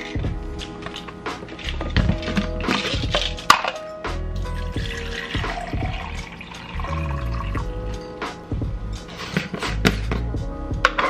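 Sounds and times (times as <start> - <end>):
background music with a beat: 0.0 - 11.0
water pouring into plastic bottle: 4.7 - 7.6.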